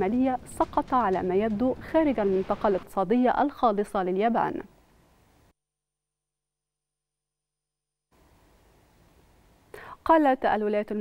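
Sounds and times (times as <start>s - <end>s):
faint microphone hiss: 2.5s - 5.5s, 8.2s - 11.0s
woman's intake of breath: 9.7s - 10.0s.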